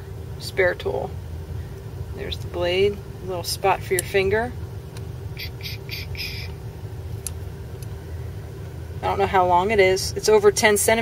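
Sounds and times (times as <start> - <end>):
low background rumble: 0.0 - 11.0
short high-pitched chirps: 5.4 - 6.5.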